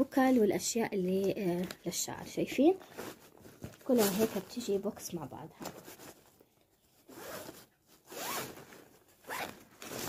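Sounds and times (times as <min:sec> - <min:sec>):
zipper being pulled: 0:07.1 - 0:10.0.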